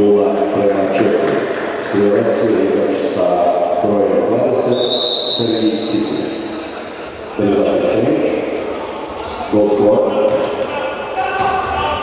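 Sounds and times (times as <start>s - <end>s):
ball bouncing on indoor court: 1.0s - 1.6s, 10.1s - 12.0s.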